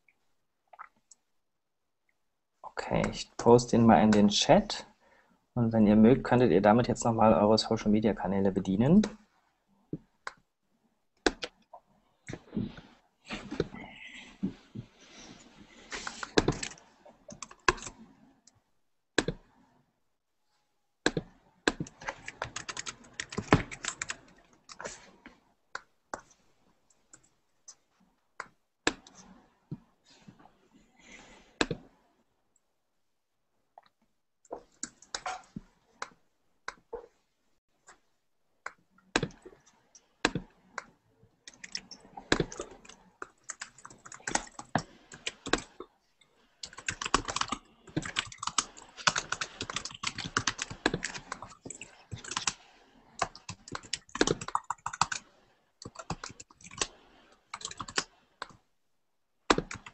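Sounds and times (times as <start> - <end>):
typing on computer keyboard: 16.0 - 18.0, 21.7 - 24.9, 41.5 - 45.7, 46.6 - 52.6, 53.2 - 58.6.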